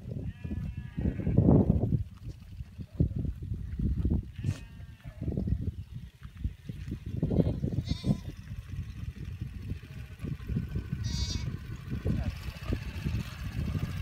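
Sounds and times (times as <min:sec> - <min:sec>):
continuous low rumble: 0:00.0 - 0:14.0
goats and sheep bleating: 0:00.2 - 0:01.5, 0:04.2 - 0:05.4, 0:07.1 - 0:08.4, 0:11.0 - 0:11.6.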